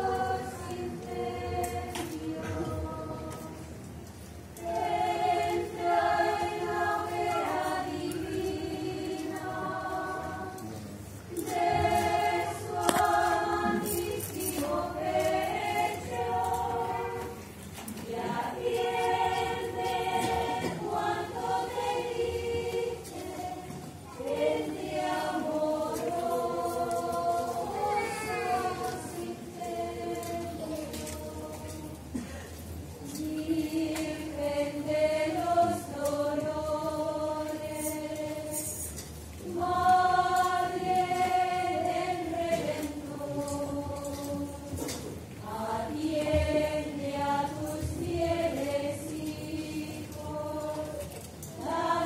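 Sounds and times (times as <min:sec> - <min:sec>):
women's choir singing a hymn: 0:00.0 - 0:52.0.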